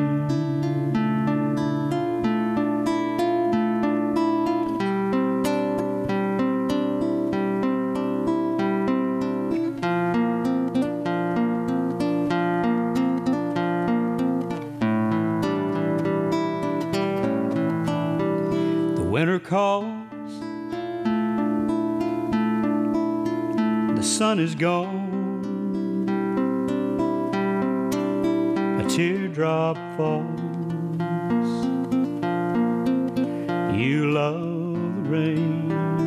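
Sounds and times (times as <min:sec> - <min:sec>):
fingerpicked nylon-string guitar: 0:00.0 - 0:36.0.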